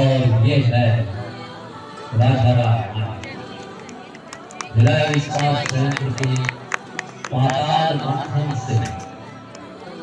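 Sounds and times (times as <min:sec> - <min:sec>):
man announcing over public address: 0:00.0 - 0:01.2, 0:02.1 - 0:03.4, 0:04.7 - 0:09.1
faint outdoor crowd: 0:00.0 - 0:10.0.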